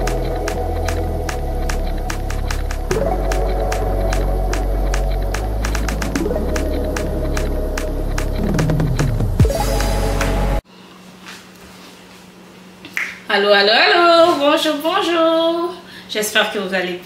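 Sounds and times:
deep bass line: 0.0 - 10.6.

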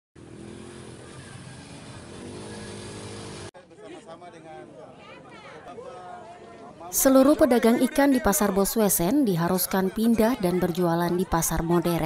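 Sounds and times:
engine running: 0.2 - 3.5
voices: 0.7 - 12.0.

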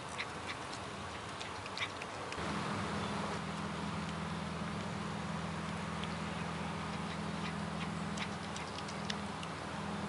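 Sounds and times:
cat chewing with sharp clicks: 0.0 - 2.4, 6.9 - 9.7
steady low hum: 0.0 - 10.0.

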